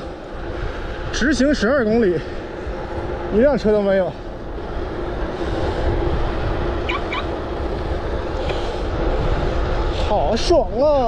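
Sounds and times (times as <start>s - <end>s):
bicycle rolling on asphalt: 0.0s - 11.0s
steady hum: 0.0s - 11.0s
wind buffeting microphone: 0.0s - 11.0s.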